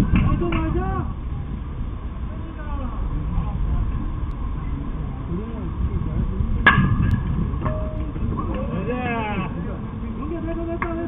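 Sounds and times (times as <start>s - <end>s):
outdoor noise: 0.0s - 11.0s.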